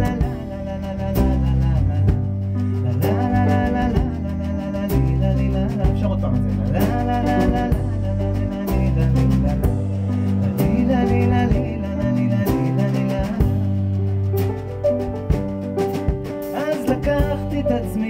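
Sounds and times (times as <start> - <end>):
bass holding low notes: 0.0 - 18.0.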